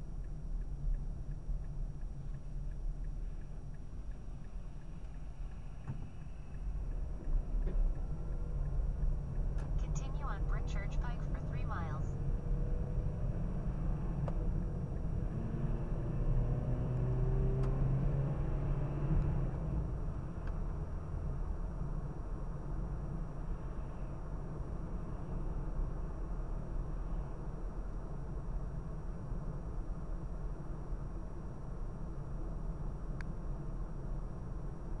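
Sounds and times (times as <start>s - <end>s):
car engine and tyres rumbling: 0.0s - 35.0s
voice-like sound: 9.9s - 12.1s.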